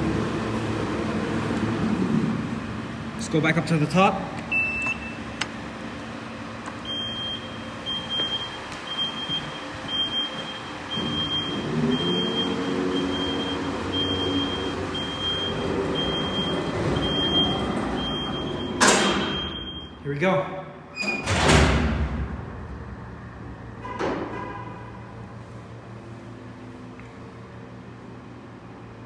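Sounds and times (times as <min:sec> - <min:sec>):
high warning beeps: 0:04.5 - 0:05.2, 0:06.8 - 0:20.0.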